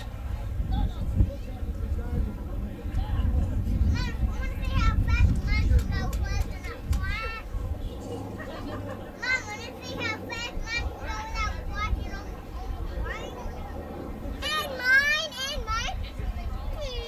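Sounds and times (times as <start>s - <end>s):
children chattering and calling out: 3.2s - 17.0s.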